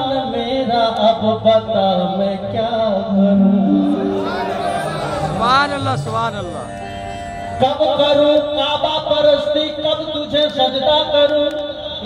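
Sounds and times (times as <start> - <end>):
harmonium: 0.0 - 12.0.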